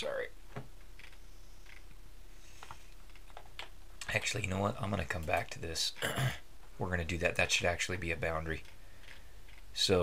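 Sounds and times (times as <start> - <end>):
mouse and keyboard clicks: 1.0 - 2.0.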